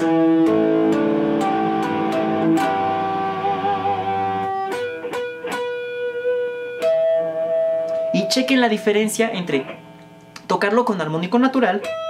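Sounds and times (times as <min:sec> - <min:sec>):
electric guitar harmonics ringing: 0:00.0 - 0:10.2, 0:11.2 - 0:12.0.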